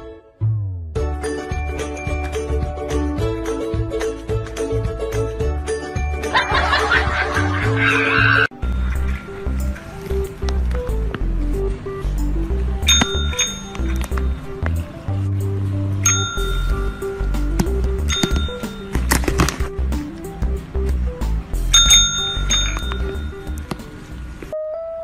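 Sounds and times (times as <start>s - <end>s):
background music with bass line: 0.0s - 24.5s
call bell ringing: 8.5s - 10.3s, 12.8s - 14.8s, 16.0s - 19.1s, 21.8s - 23.7s.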